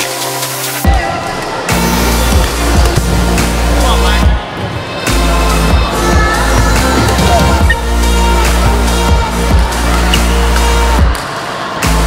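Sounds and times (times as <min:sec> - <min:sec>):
electronic music with heavy bass: 0:00.0 - 0:11.2, 0:11.8 - 0:12.0
deep sustained bass: 0:05.1 - 0:11.0.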